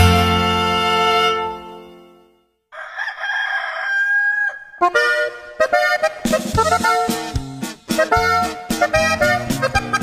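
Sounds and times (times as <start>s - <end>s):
band music: 0.0s - 2.1s, 4.9s - 10.0s
song playing: 0.0s - 2.3s, 4.8s - 10.0s
rooster crowing: 2.7s - 4.9s.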